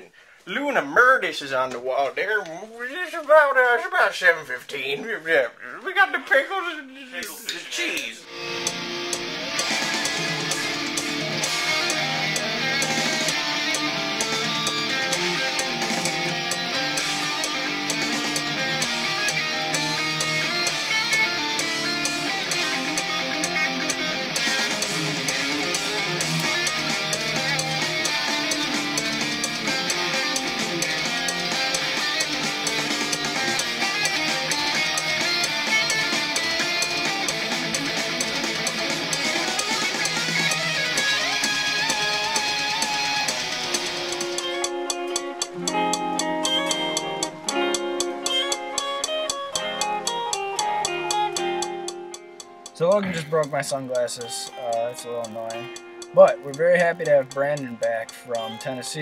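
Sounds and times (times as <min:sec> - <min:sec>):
electric guitar playing metal riffs: 0:07.8 - 0:59.0.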